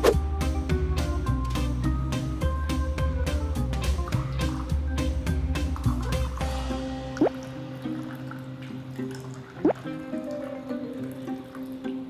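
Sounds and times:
background music: 0.0 - 12.0
water pouring into glass bowl: 5.8 - 12.0.

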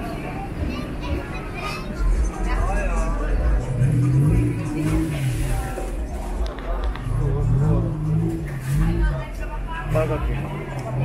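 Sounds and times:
background chatter of voices: 0.0 - 11.0
faint music: 0.0 - 11.0.

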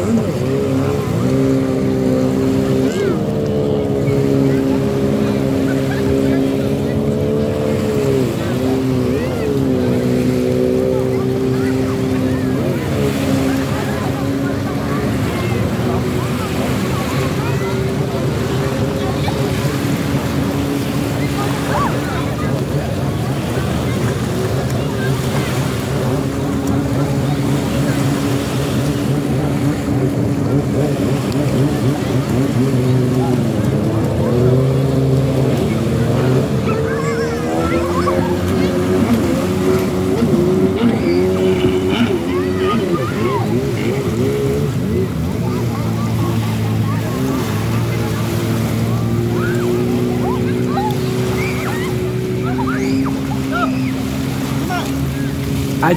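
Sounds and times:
jet ski engines humming: 0.0 - 55.9.

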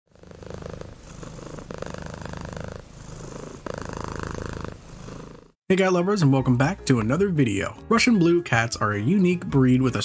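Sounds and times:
cat purring: 0.1 - 5.6.

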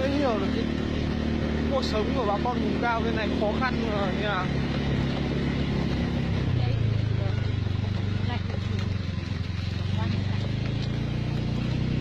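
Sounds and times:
motorbike engine running: 0.0 - 12.0
wind and road noise: 0.0 - 12.0.

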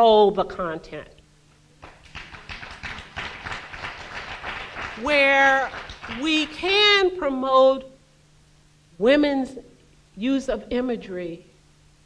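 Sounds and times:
audience applauding: 1.8 - 6.6.

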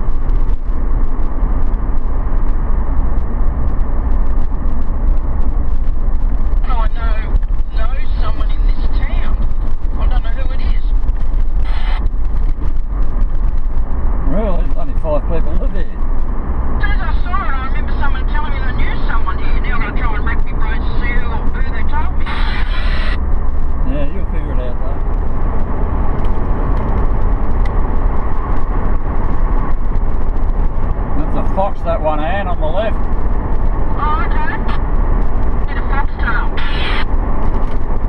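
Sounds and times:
car engine and road noise: 0.0 - 38.0
indistinct voices talking: 6.6 - 11.0, 16.8 - 23.2, 33.9 - 34.9, 35.6 - 37.1.

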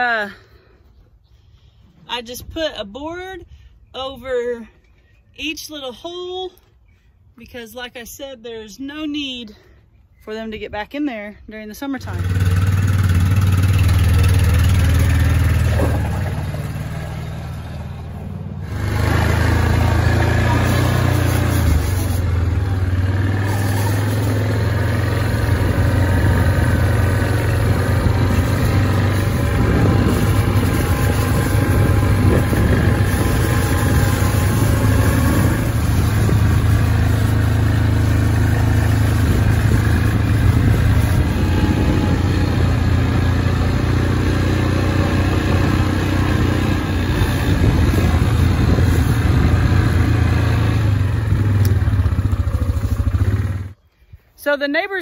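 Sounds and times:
atv engine running: 11.8 - 53.8.

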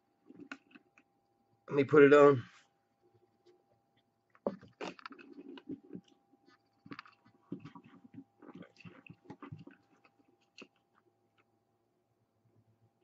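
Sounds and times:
latex mask rustling and scraping: 4.4 - 11.5.

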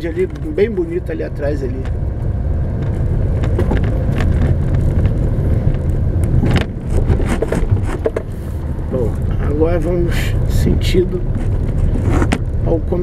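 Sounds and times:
car engine and road rumble: 0.0 - 13.0
knocks and rattles: 2.8 - 8.3.

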